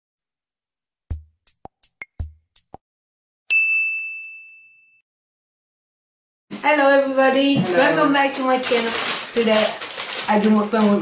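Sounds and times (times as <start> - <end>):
bell-like ding: 3.5 - 5.0.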